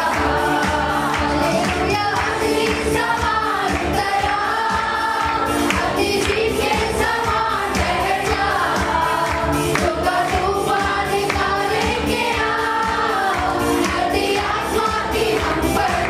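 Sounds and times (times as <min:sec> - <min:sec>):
group of voices singing: 0:00.0 - 0:16.0
keyboard with steady beat: 0:00.0 - 0:16.0
women singing into microphones: 0:00.0 - 0:16.0.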